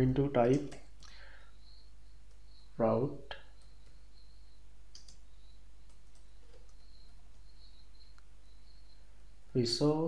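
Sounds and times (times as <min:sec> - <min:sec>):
computer keyboard keys clicking: 0:04.9 - 0:05.2, 0:05.8 - 0:07.4.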